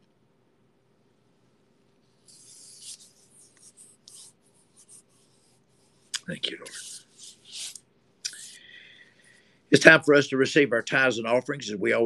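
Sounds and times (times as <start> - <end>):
hands rubbing and rustling: 2.0 - 8.6.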